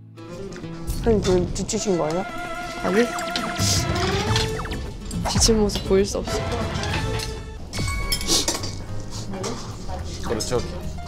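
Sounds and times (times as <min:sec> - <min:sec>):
soft background music: 0:00.0 - 0:11.0
metal tongs clinking on steel pot: 0:07.2 - 0:10.8.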